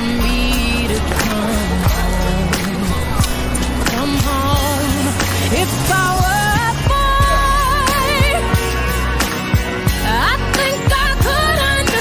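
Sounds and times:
woman singing: 0.0 - 8.9, 10.0 - 12.0
bass line: 0.0 - 12.0.

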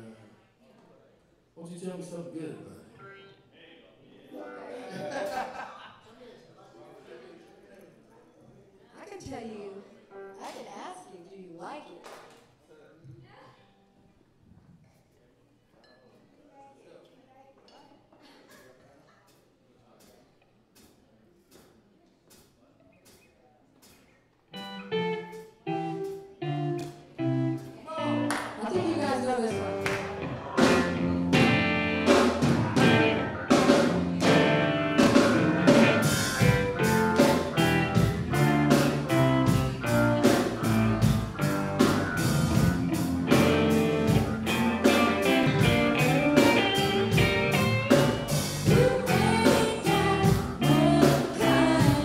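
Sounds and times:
soul-funk band playing: 23.9 - 52.0
plucked guitar and bass notes: 24.6 - 52.0.

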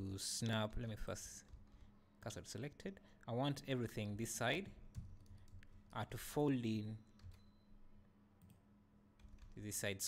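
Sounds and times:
faint room hum: 0.0 - 10.0.

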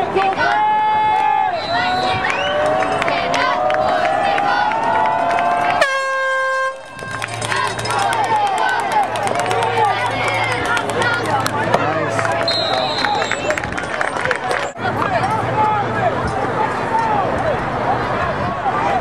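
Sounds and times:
spectators yelling: 0.0 - 5.9, 6.8 - 19.0
spectators shouting and cheering: 0.0 - 19.0
short whistle: 1.6 - 2.6, 12.4 - 13.6
air horn blast: 5.8 - 7.2.

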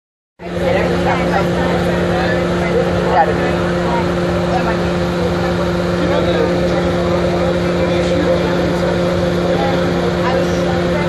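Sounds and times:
bus engine droning hum: 0.4 - 11.0.

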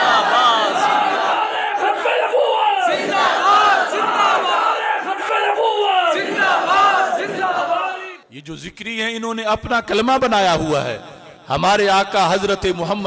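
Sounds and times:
crowd of men shouting: 0.0 - 8.3.

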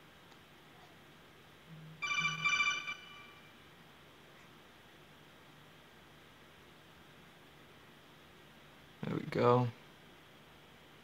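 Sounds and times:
warbling electronic alert chime: 2.0 - 3.5.

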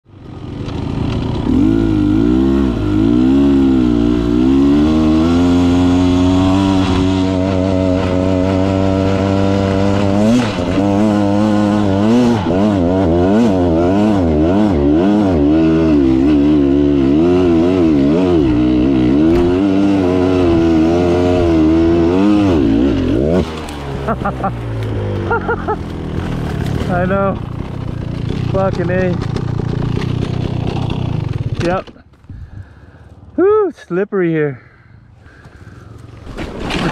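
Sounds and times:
dirt bike engine revving: 0.2 - 31.8.

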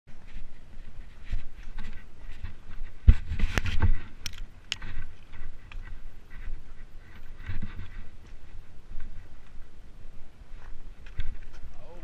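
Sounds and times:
footsteps crunching on a trail: 0.1 - 12.0.

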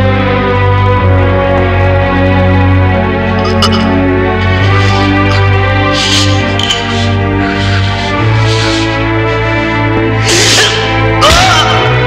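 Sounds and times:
low film score drone: 0.0 - 12.0.

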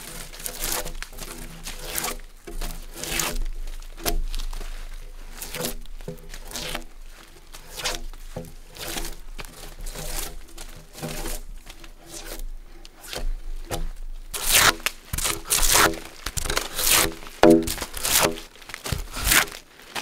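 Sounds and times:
draw knife scraping bark: 0.1 - 4.2, 5.3 - 6.9, 7.6 - 19.6.

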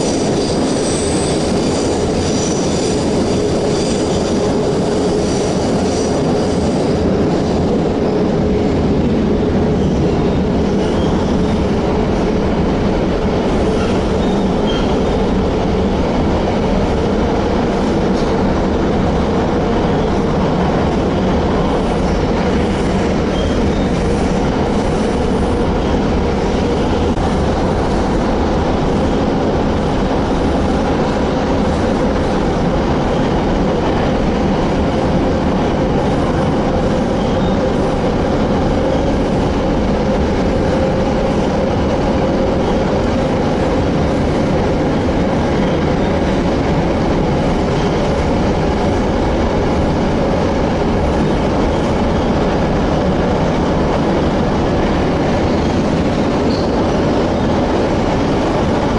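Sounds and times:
train wheels rumbling on rails: 0.0 - 58.9.

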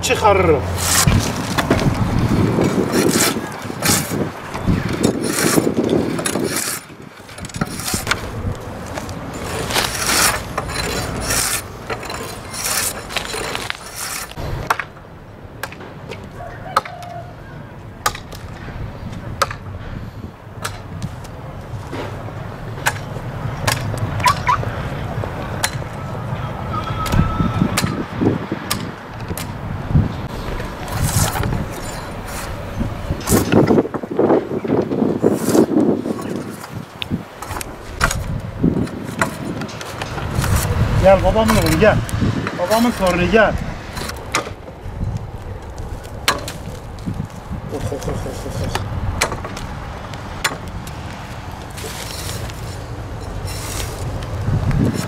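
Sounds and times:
bark scraping and tearing: 0.6 - 14.4, 30.3 - 34.2, 34.9 - 55.0.

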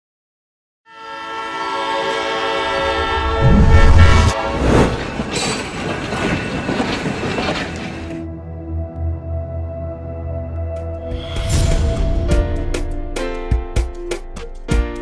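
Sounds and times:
train whistle blast: 0.9 - 4.9
train rumbling past: 1.3 - 8.3.

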